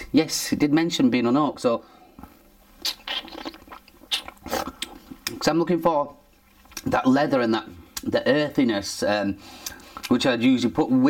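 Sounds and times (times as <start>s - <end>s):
person slurping wine: 2.2s - 5.2s
soft mouth noises: 2.2s - 5.4s.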